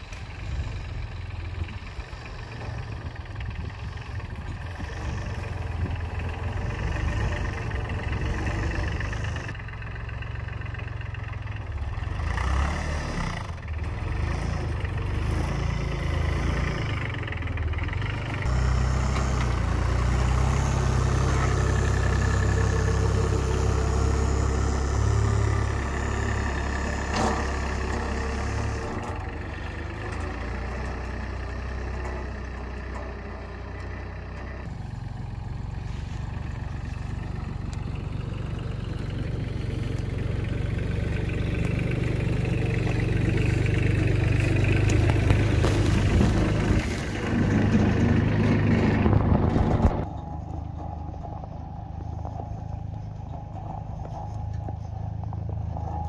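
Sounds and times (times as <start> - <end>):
tractor diesel engine running: 0.0 - 56.0
blade pushing snow: 44.8 - 50.0.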